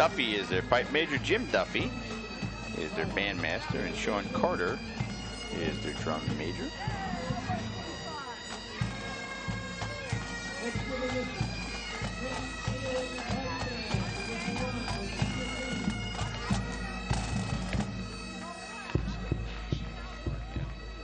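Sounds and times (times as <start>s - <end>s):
bagpipes playing a tune: 0.0s - 21.0s.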